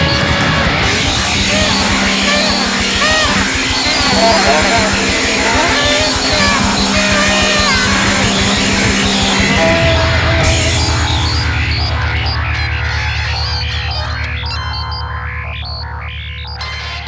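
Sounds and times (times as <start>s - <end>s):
loud rock music: 0.0s - 16.5s.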